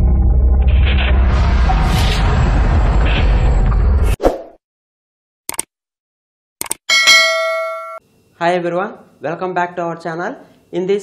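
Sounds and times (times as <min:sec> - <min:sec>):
bell ding: 0:06.9 - 0:08.0.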